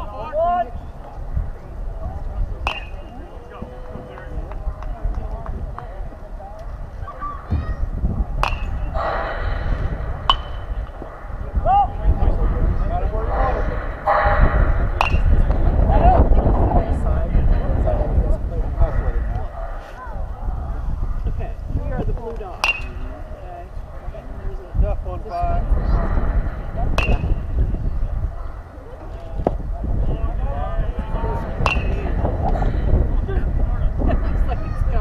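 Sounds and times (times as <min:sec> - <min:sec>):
wind rumbling on microphone: 0:00.0 - 0:35.0
ball cracking on bat: 0:02.6 - 0:05.9, 0:08.3 - 0:11.2, 0:14.9 - 0:15.7, 0:22.3 - 0:23.2, 0:27.0 - 0:27.4, 0:31.6 - 0:32.6.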